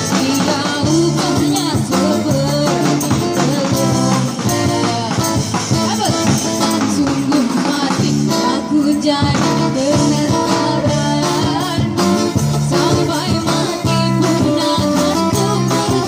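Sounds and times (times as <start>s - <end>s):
drum kit: 0.0s - 16.0s
jingling tambourine: 0.0s - 16.0s
woman singing through a microphone: 0.0s - 16.0s.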